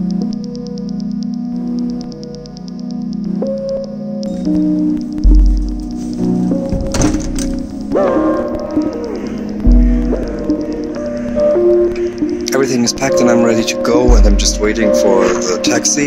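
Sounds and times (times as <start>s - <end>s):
steady synth tones: 0.0s - 16.0s
deep bass booms: 5.3s - 5.9s, 14.1s - 14.9s.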